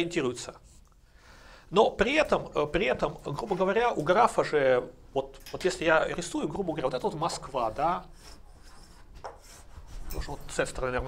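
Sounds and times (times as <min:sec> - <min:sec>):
chalk scratching on chalkboard: 0:07.2 - 0:10.6.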